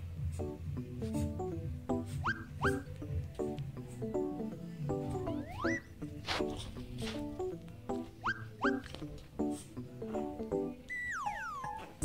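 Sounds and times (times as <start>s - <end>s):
background music: 0.0s - 12.0s
dog whimpering and whining: 2.1s - 2.9s, 10.9s - 11.9s.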